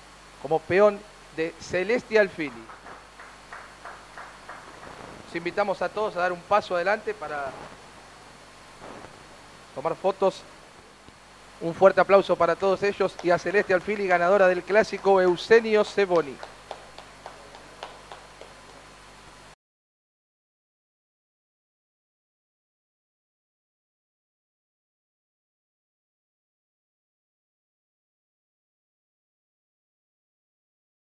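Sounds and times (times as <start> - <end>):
low steady hum: 0.0 - 19.6
light hand clapping: 2.3 - 5.2, 13.0 - 14.2, 16.1 - 18.9.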